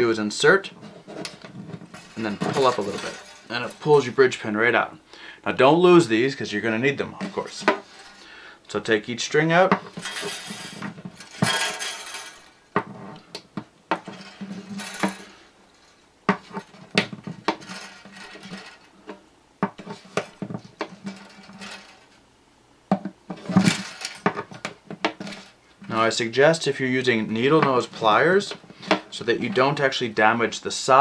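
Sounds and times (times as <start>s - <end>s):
guitar strings scraping out: 0.0s - 4.4s, 6.8s - 8.5s, 9.5s - 19.2s.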